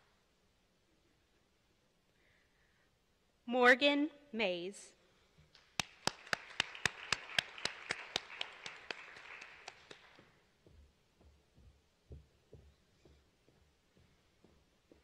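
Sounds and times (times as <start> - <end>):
close sharp claps: 5.5 - 10.4
small crowd clapping: 5.5 - 10.5
soft low thumps: 10.6 - 15.0.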